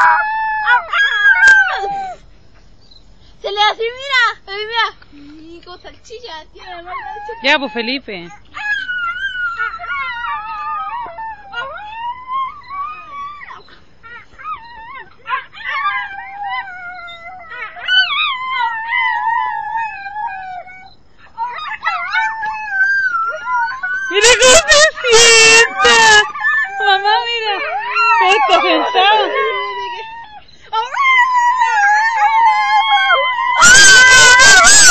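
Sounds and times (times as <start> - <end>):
dog howling: 0.0 - 2.2, 8.6 - 13.6, 14.2 - 34.9
people imitating howls: 21.4 - 34.9.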